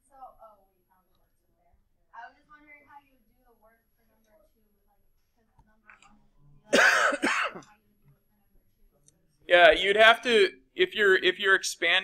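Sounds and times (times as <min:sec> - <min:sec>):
person clearing throat: 0:06.7 - 0:07.7.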